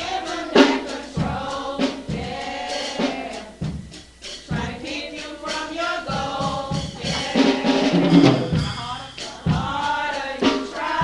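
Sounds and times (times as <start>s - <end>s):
youth choir singing gospel: 0.0s - 11.0s
low thumping beats: 6.2s - 9.9s.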